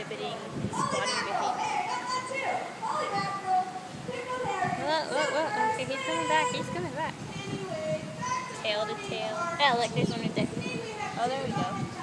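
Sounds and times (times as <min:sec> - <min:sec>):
children chattering and calling: 0:00.0 - 0:12.0.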